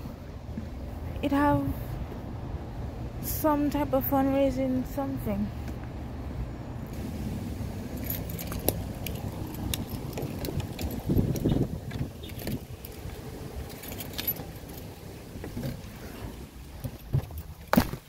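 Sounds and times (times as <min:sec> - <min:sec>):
keys jingling: 0:07.9 - 0:15.0.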